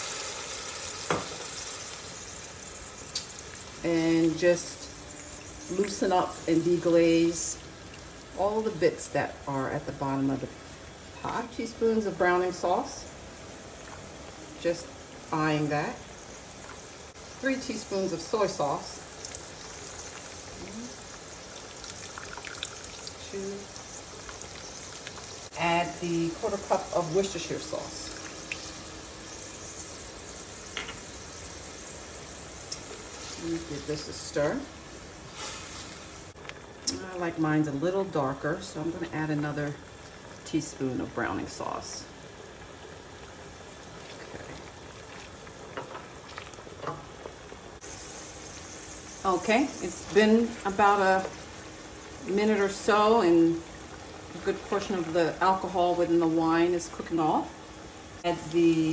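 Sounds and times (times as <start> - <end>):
liquid simmering in a pot: 0.0 - 58.9.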